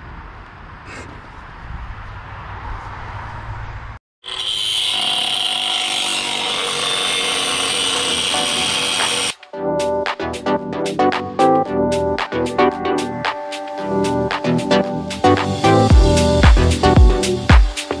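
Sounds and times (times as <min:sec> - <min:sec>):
angle grinder cutting steel: 0:04.2 - 0:09.4, 0:15.2 - 0:18.0
music: 0:08.0 - 0:18.0.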